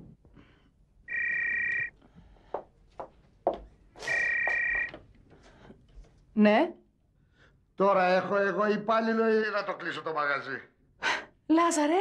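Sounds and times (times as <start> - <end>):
warbling electronic telephone ring: 1.1 - 1.9, 4.1 - 4.9.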